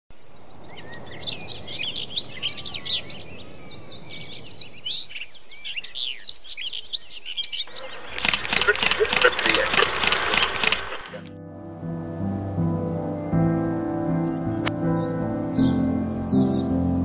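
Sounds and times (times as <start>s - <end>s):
birds chirping: 0.2s - 11.3s.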